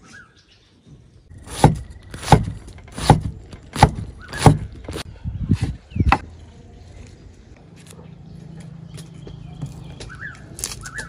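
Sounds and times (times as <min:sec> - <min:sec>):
cleaver chopping on wooden board: 0:01.4 - 0:05.0.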